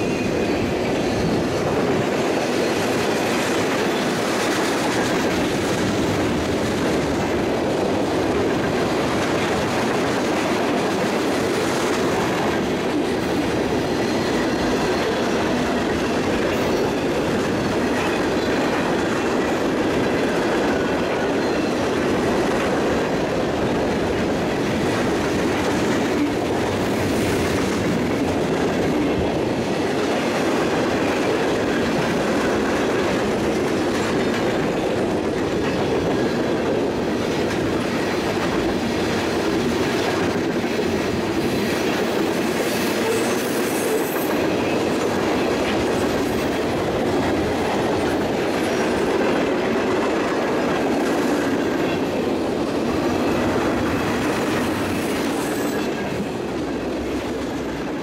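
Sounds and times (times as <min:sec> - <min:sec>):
clickety-clack over rail joints: 0:00.0 - 0:58.0
freight train rolling past: 0:00.0 - 0:58.0.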